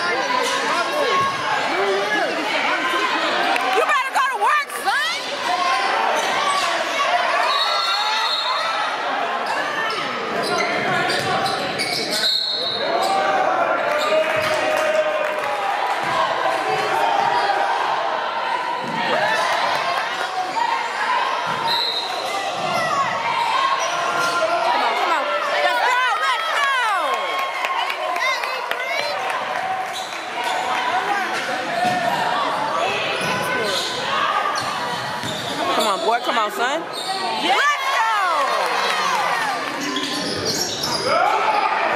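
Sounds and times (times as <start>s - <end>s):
players and spectators voices: 0.0s - 41.9s.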